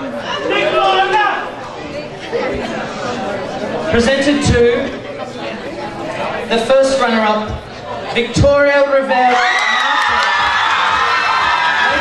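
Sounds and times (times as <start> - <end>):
several people talking at once: 0.0 - 10.8.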